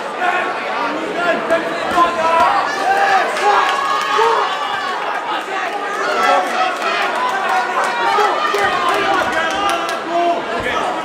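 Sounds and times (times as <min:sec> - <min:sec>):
crowd voices calling out: 0:00.0 - 0:11.0.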